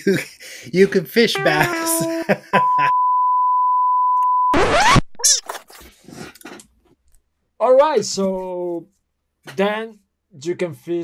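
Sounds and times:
clipped speech: 1.3s - 2.3s
high-pitched test tone beep: 1.4s - 4.6s.

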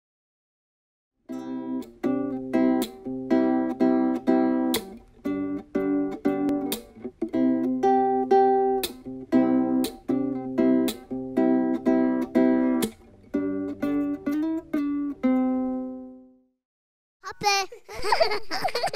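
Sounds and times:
guitar strummed in chords: 1.3s - 16.3s.

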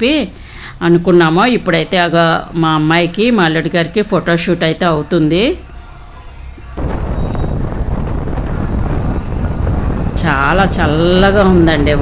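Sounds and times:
wind buffeting microphone: 6.8s - 12.0s.

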